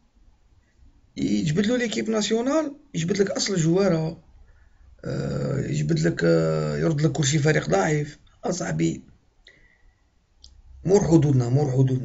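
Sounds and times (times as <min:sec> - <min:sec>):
man talking: 0:01.2 - 0:04.2, 0:05.0 - 0:09.1, 0:10.8 - 0:12.0.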